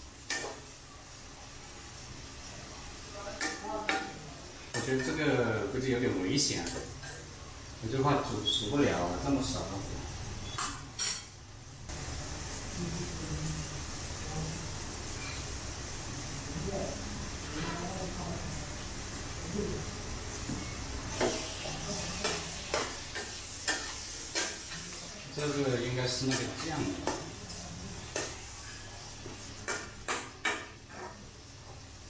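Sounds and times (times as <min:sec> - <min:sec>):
food sizzling in a wok: 0:00.0 - 0:32.0.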